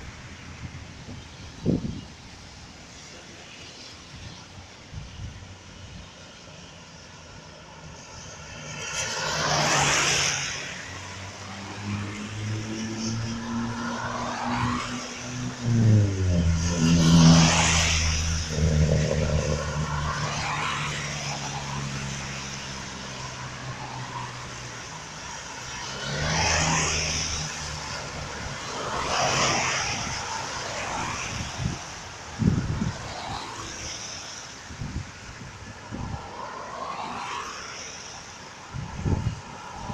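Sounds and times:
cars passing on wet road: 0:00.0 - 0:39.9
low engine hum: 0:15.3 - 0:22.6.

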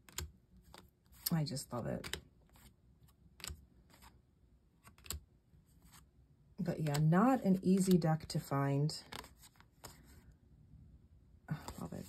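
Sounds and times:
cards clicking and sliding: 0:00.0 - 0:01.4, 0:02.0 - 0:04.2, 0:04.8 - 0:05.2, 0:06.7 - 0:08.0, 0:09.0 - 0:10.2.

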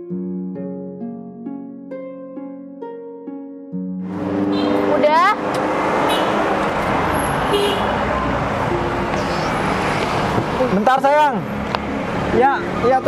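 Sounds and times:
road traffic: 0:04.0 - 0:13.0
short rising voice: 0:08.9 - 0:10.3.

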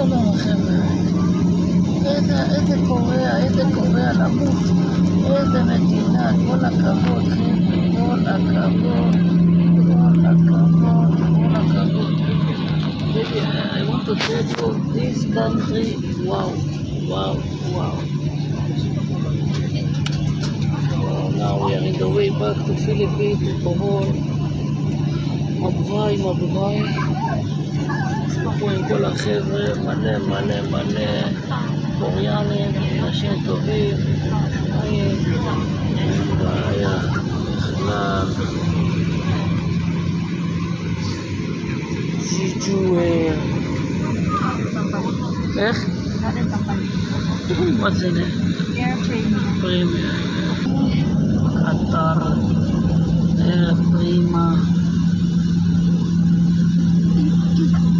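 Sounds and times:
airliner cabin drone: 0:00.0 - 0:57.9.

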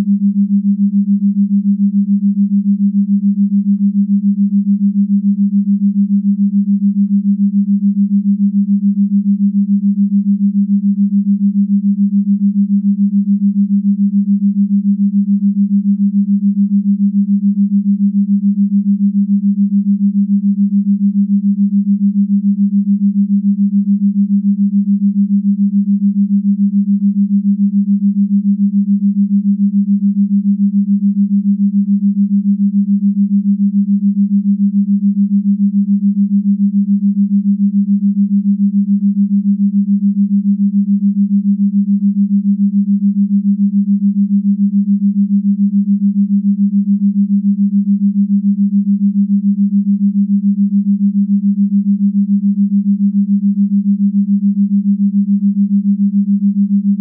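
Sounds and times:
low pulsing hum: 0:00.0 - 0:57.0.

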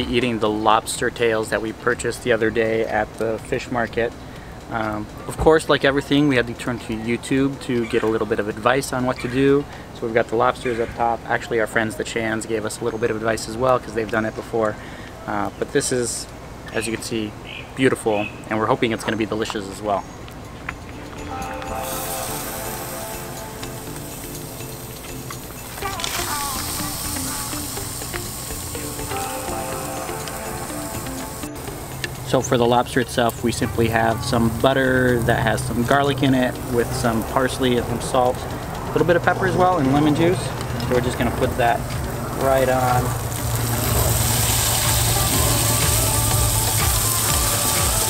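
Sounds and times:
background music with steady beat: 0:19.4 - 0:48.0
food sizzling on a grill: 0:21.7 - 0:37.8, 0:40.5 - 0:48.0.

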